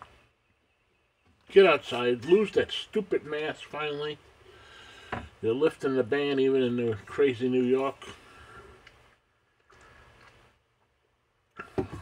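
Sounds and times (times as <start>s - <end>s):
faint low hiss: 0.0s - 12.0s
person speaking: 5.4s - 8.2s.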